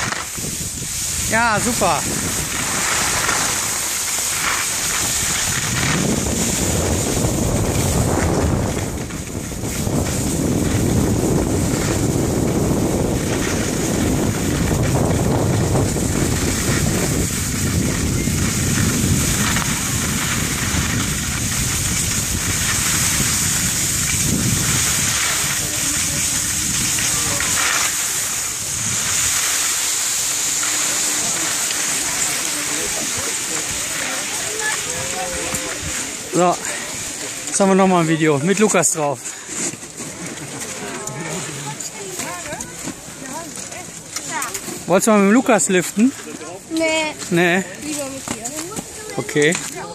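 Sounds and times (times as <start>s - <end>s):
wind on microphone: 0.0s - 37.4s
skis sliding on snow: 0.0s - 49.9s.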